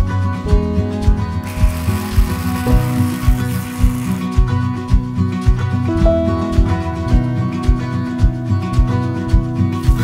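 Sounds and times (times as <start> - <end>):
acoustic guitar music: 0.0 - 10.0
immersion blender running: 1.4 - 4.4.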